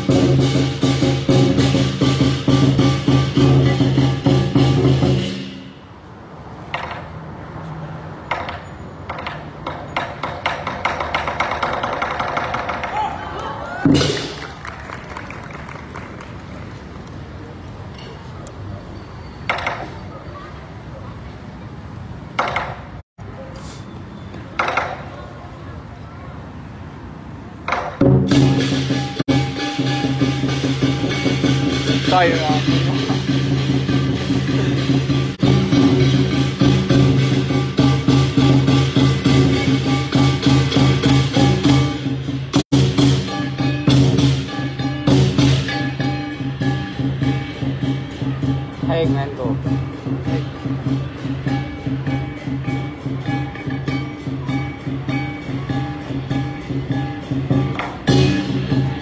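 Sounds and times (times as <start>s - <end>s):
drum and cymbals playing fast beat: 0.0s - 6.0s, 13.8s - 14.5s, 28.0s - 59.0s
low background murmur: 47.2s - 59.0s.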